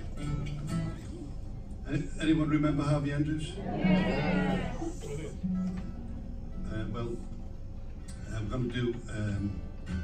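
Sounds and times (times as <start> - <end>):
acoustic guitar notes ringing: 5.4 - 7.0.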